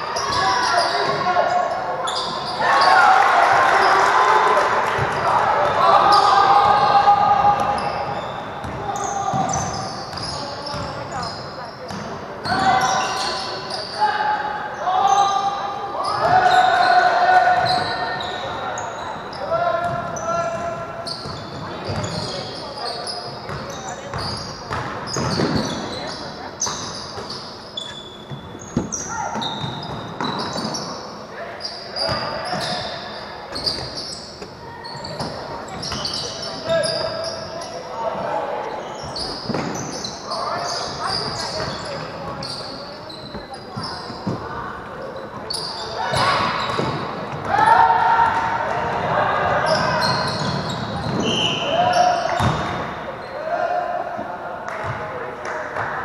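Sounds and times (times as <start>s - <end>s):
voices calling out in hall: 0.0s - 56.0s.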